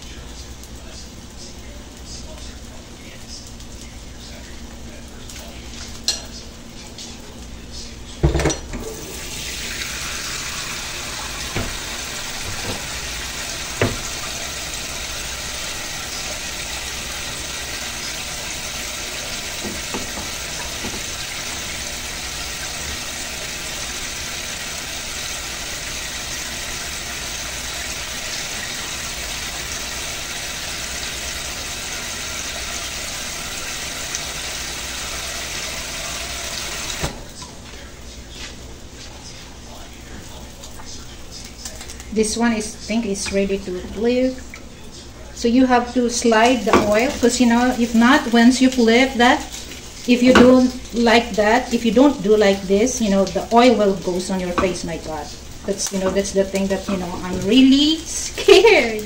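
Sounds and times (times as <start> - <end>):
oil sizzling in a pan: 8.8 - 59.0
knocks on pan: 13.8 - 14.1, 19.6 - 21.1.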